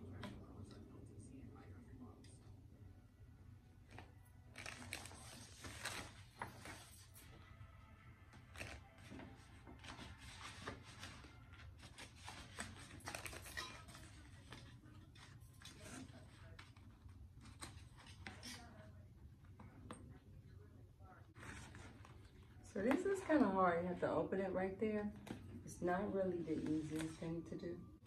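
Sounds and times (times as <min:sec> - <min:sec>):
rustling and crinkling: 0:03.8 - 0:07.5, 0:08.3 - 0:20.1.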